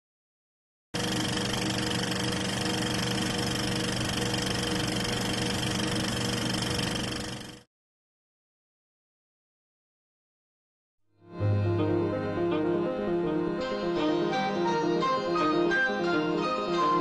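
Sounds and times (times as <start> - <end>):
film projector whirring and rattle: 1.0 - 7.7.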